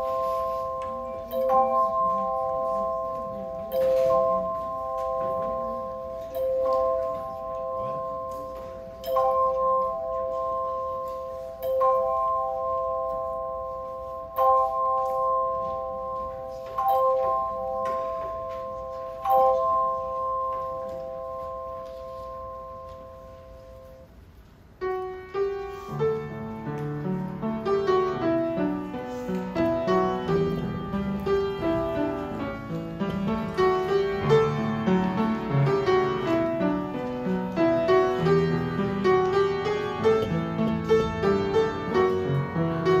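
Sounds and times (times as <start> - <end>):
hand bells ringing a chord: 0.0 - 23.9.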